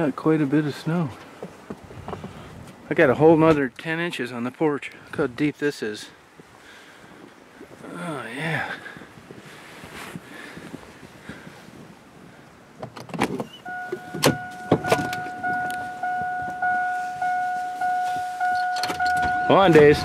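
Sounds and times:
vehicle door opening: 12.8s - 20.0s
door-open warning chime: 13.6s - 20.0s.

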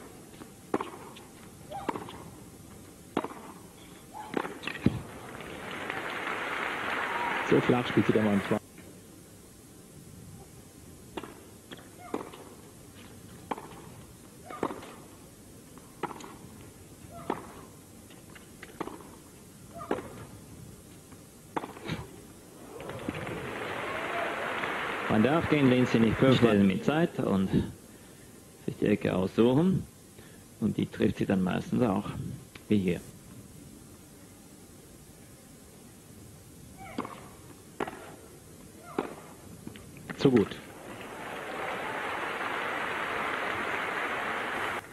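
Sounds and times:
faint court ambience: 0.0s - 9.2s, 21.9s - 28.7s, 38.0s - 44.9s
racket hitting tennis ball: 0.7s - 2.4s, 3.1s - 5.1s, 11.1s - 15.1s, 15.8s - 16.5s, 17.1s - 17.7s, 18.6s - 20.3s, 21.5s - 22.1s, 36.8s - 38.2s, 38.8s - 39.3s.

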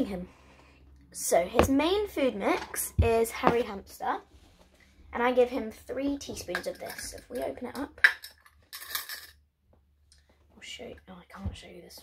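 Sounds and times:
glass jar clinking rattle: 6.7s - 9.4s.

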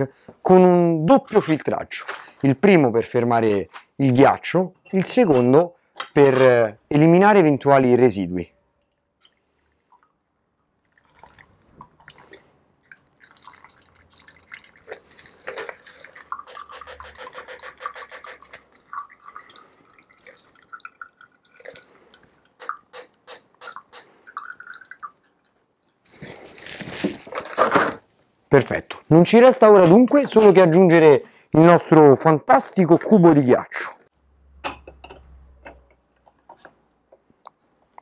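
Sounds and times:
liquid trickling into glass: 8.6s - 22.9s, 23.7s - 26.0s.

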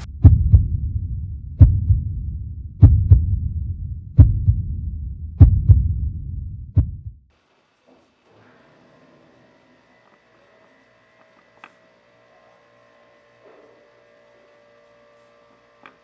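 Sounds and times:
heartbeat thumps: 0.0s - 7.2s
low rumble: 0.0s - 7.3s.

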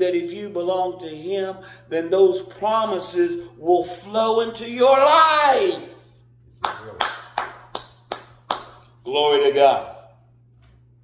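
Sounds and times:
person clapping hands: 6.6s - 8.9s.

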